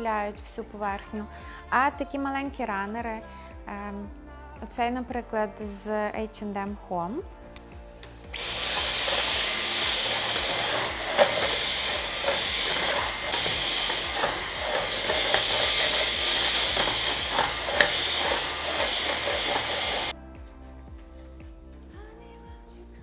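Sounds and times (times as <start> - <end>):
handheld vacuum cleaner whine: 8.3 - 20.1.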